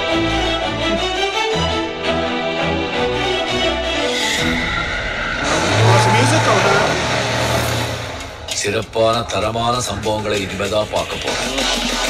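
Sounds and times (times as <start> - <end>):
low steady drone: 2.1 - 8.6
dense sound effects mix: 4.0 - 12.0.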